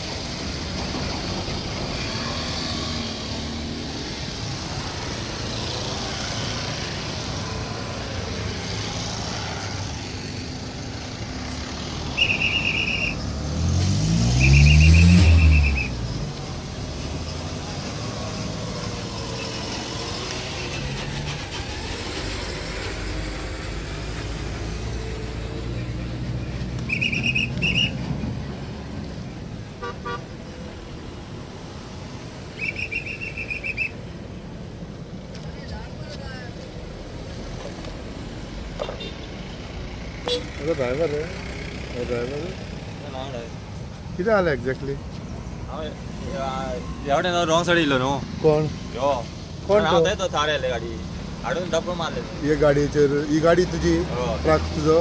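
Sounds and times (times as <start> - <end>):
road traffic passing: 0.0 - 55.0
vehicle engine passing close: 0.1 - 29.6
vehicle horns honking: 12.2 - 13.2, 29.8 - 30.4, 38.8 - 39.4, 40.2 - 40.8.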